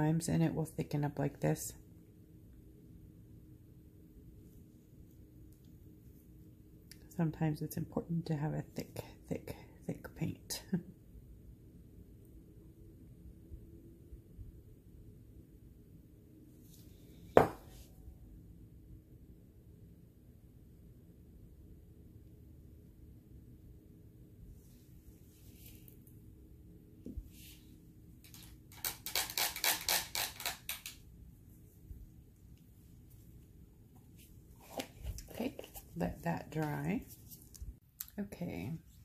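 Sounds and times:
hard object knocking on tabletop: 17.4s - 17.7s
soft handling sounds: 24.5s - 26.2s, 31.3s - 37.8s.

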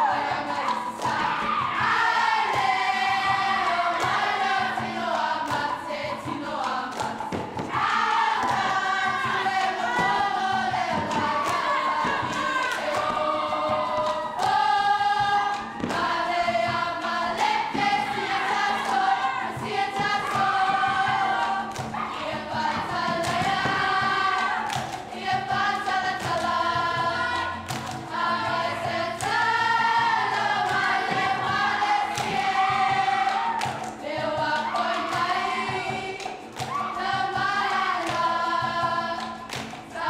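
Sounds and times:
girls choir singing in harmony: 0.0s - 40.0s
hand claps: 0.0s - 40.0s
strummed guitars: 0.0s - 40.0s.

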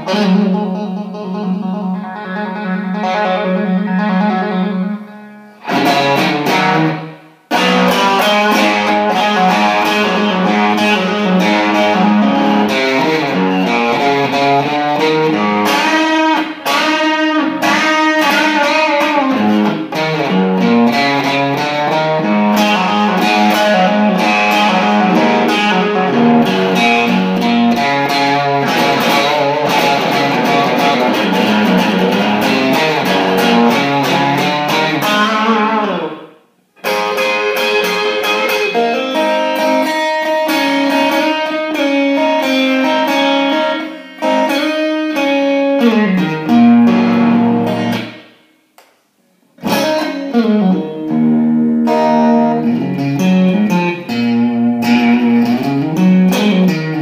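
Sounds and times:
electric guitar playing: 0.0s - 48.4s, 49.5s - 57.0s.

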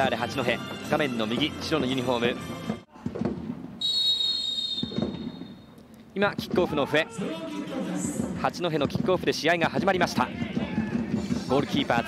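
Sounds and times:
referee's whistle long blast: 3.8s - 5.5s.

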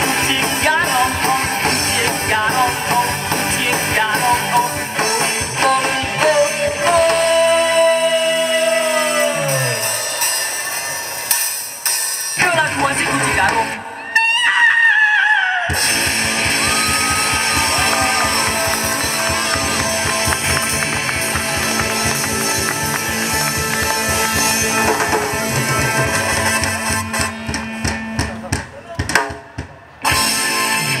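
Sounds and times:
live rock band playing: 0.0s - 14.9s, 15.6s - 31.0s.

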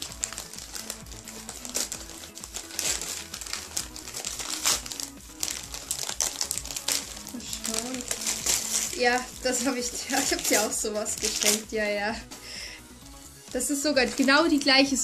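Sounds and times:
wrapping paper crinkling: 0.0s - 11.7s
background music: 0.0s - 15.0s.

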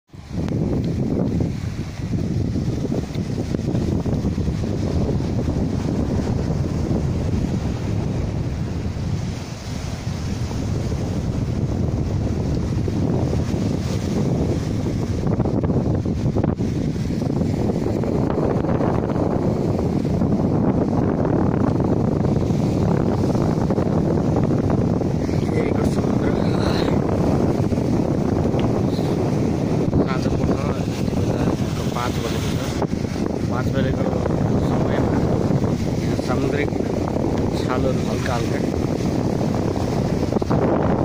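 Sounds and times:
waves washing against rocks: 0.1s - 41.0s
wind buffeting microphone: 0.1s - 41.0s.

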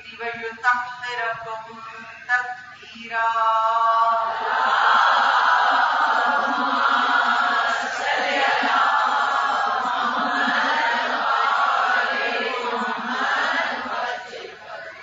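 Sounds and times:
voices chanting: 4.3s - 15.0s.

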